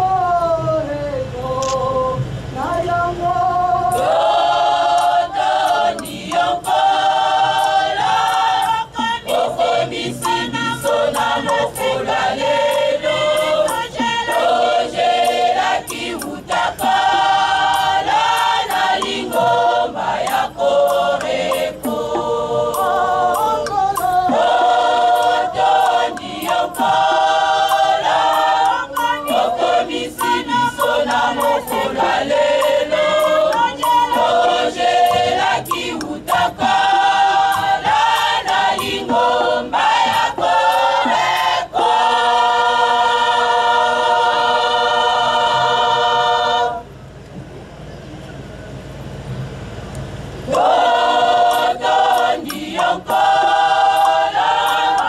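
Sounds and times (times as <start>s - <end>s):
choir singing in harmony: 0.0s - 47.2s, 49.7s - 55.0s.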